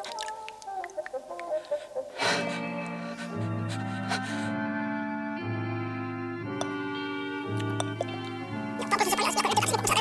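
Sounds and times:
organ-like cartoon music: 0:03.0 - 0:10.0.

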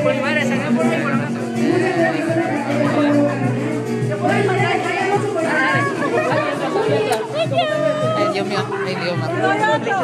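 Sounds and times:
background music: 0:00.0 - 0:10.0
people talking at once: 0:00.0 - 0:10.0.

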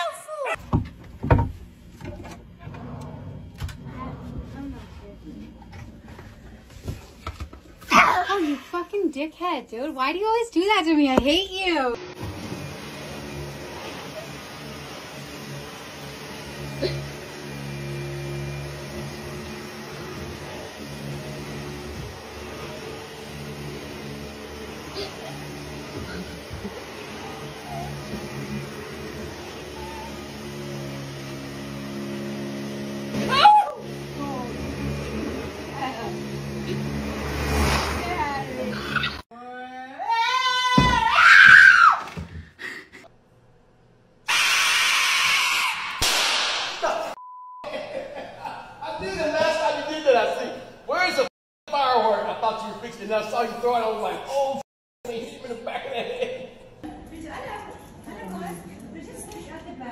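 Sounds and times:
vacuum cleaner on carpet: 0:11.9 - 0:39.2
person screaming: 0:33.2 - 0:33.8, 0:39.0 - 0:42.1.

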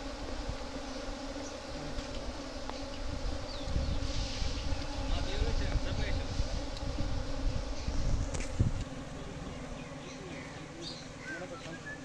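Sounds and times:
honeybee swarm buzzing: 0:00.0 - 0:12.0.

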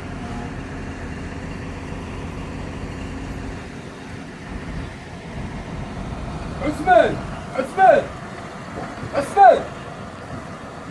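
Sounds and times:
crane engine running: 0:00.0 - 0:10.9.

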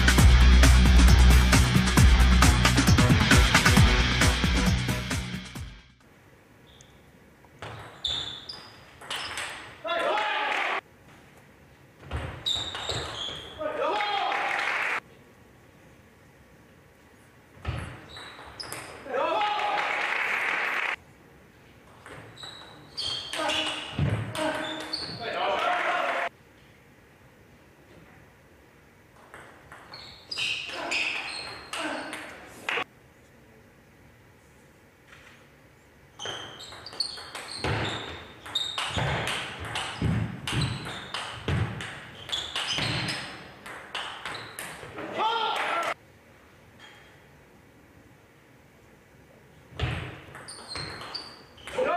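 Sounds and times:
table tennis ball pinging: 0:08.9 - 0:09.6, 0:36.2 - 0:44.9, 0:49.8 - 0:51.9
crowd cheering and applause: 0:19.4 - 0:21.0.

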